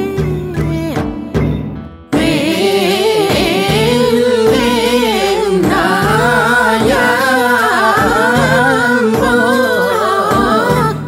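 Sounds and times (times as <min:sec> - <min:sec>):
instrumental backing: 0:00.0 - 0:11.0
person singing solo: 0:02.2 - 0:11.0.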